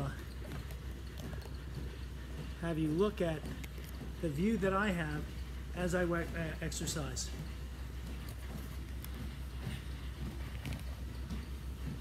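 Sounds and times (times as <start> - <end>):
ship machinery humming: 0.0 - 12.0.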